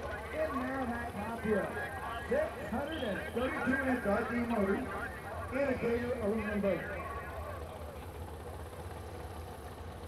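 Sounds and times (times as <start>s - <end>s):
distant boat engines idling: 0.0s - 10.0s.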